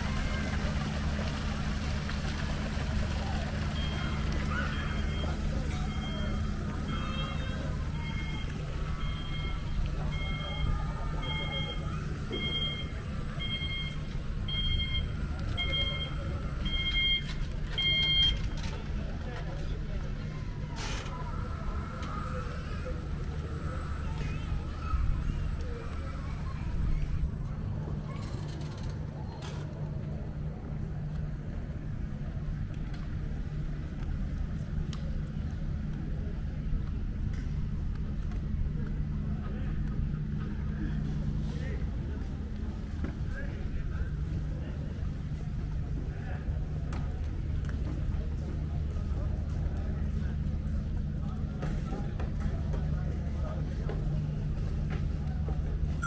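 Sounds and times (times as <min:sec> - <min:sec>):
low mechanical hum: 0:00.0 - 0:56.0
low street rumble: 0:00.0 - 0:56.0
electronic two-tone beeps: 0:08.0 - 0:18.4.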